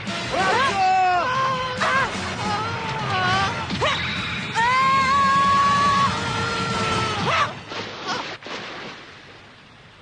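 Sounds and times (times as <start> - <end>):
background music: 0.0 - 7.8.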